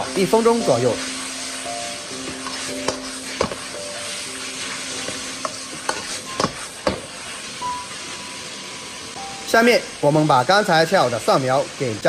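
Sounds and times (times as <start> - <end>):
metal ladle scraping wok: 0.0 - 8.2
food sizzling in a wok: 0.0 - 12.0.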